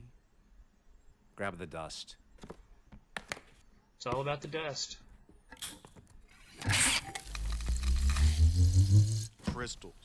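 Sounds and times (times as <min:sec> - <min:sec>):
low machine hum rising in pitch: 0:07.2 - 0:09.3.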